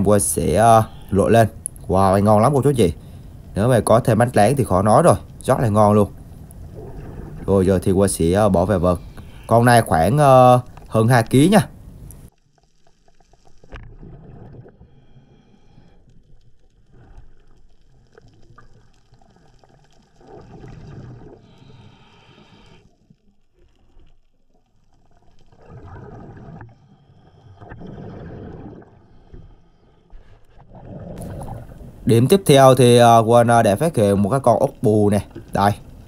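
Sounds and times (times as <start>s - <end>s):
diver breathing underwater: 8.9s - 9.5s, 14.4s - 16.2s, 21.0s - 23.0s, 26.1s - 32.0s.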